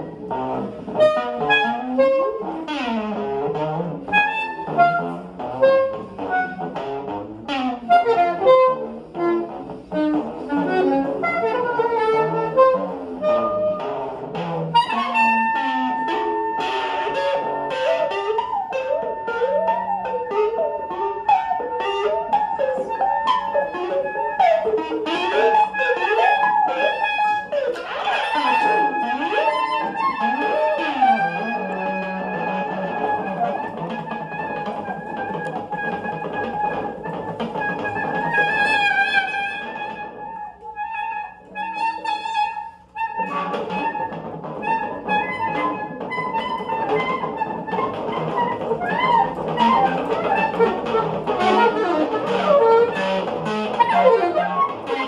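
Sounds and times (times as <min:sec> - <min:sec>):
electric guitar: 0:00.0 - 0:55.0
soprano saxophone: 0:00.0 - 0:55.0.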